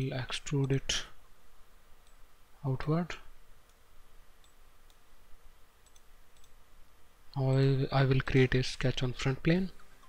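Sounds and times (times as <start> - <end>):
faint computer mouse clicks: 2.0 - 2.2, 4.4 - 5.0, 5.8 - 6.6.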